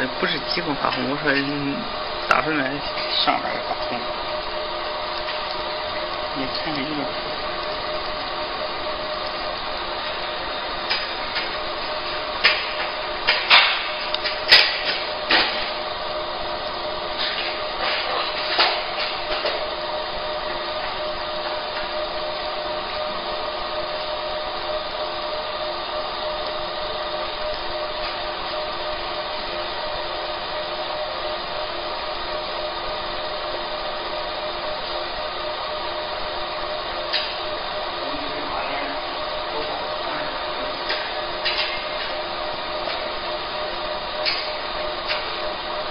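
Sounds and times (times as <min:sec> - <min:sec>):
laser machine humming: 0:00.0 - 0:45.9.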